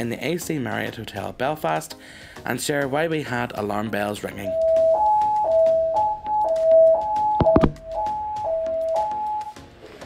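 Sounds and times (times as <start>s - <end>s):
two-tone fire alarm: 4.4s - 9.6s.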